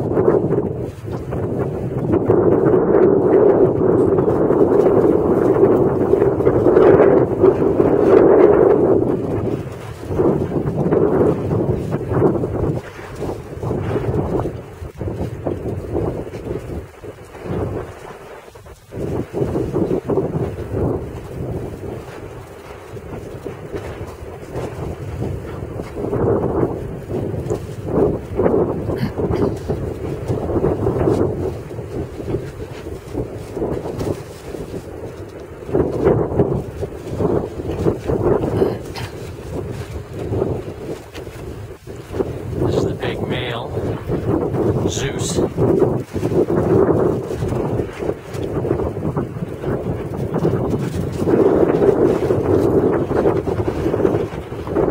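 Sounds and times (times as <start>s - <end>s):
wind buffeting microphone: 0.0s - 54.9s.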